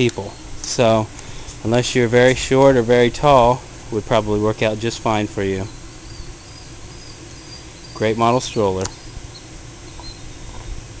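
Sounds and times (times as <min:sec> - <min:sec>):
steady hiss: 0:00.0 - 0:11.0
faint high chirps: 0:05.6 - 0:10.8.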